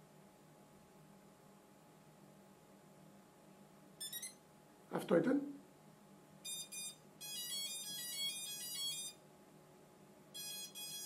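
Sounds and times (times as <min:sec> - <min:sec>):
quick electronic beeps: 0:04.0 - 0:04.4, 0:06.5 - 0:09.2, 0:10.4 - 0:11.0.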